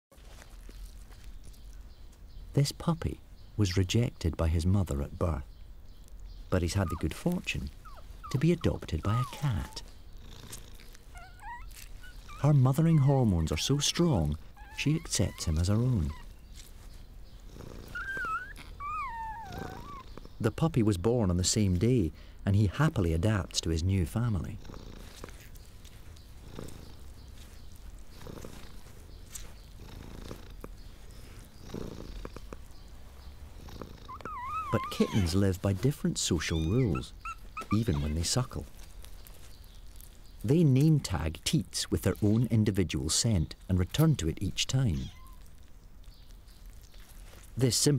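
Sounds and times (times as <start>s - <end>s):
faint low background: 0.1s - 47.9s
newborn animal squeaking: 6.4s - 20.5s, 24.3s - 40.4s, 43.4s - 47.5s
cat purring: 6.6s - 20.5s, 24.2s - 38.8s
soft licking clicks: 28.0s - 32.8s.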